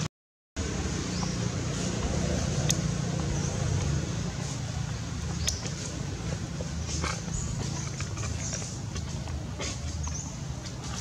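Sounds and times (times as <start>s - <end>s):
distant traffic rumble: 0.6s - 11.0s.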